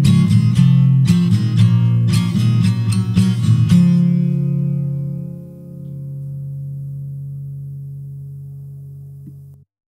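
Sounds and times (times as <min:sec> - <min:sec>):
guitar chord ringing out: 0:00.0 - 0:09.6.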